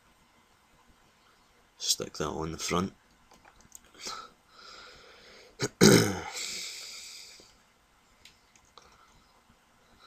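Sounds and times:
person's throaty burst: 5.6 - 6.6.

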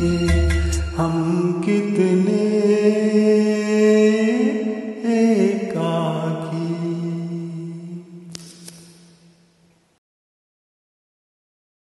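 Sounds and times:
person singing over karaoke backing: 0.0 - 8.3.

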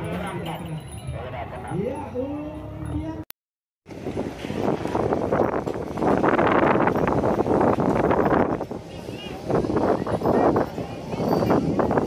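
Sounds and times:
wind buffeting microphone: 3.9 - 12.0.

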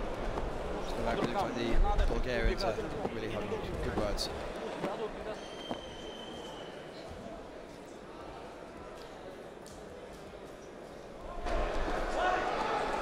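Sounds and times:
low murmur of sports hall: 0.0 - 13.0.

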